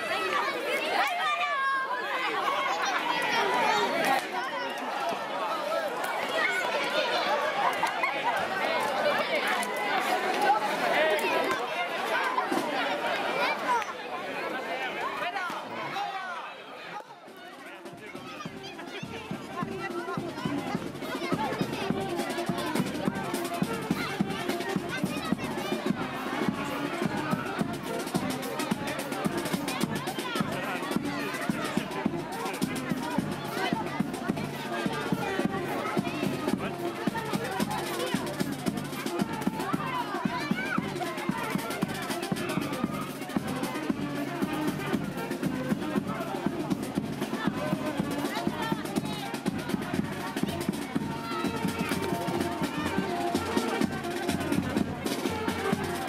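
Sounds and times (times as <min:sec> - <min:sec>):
crowd talking and shouting: 0:00.0 - 0:56.0
brass and drum band playing: 0:17.3 - 0:56.0.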